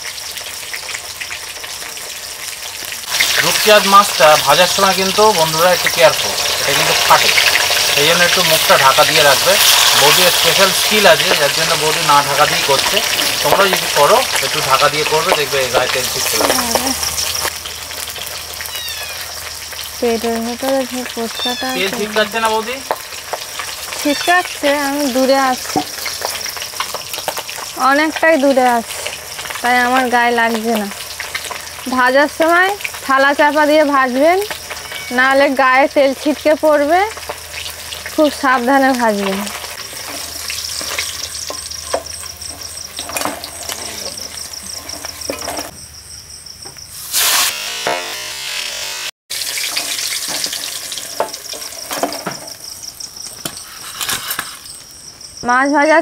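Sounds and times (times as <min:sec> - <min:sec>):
crickets chirping: 0:00.0 - 0:47.5, 0:49.3 - 0:56.0
fish sizzling in hot oil: 0:00.0 - 0:55.4.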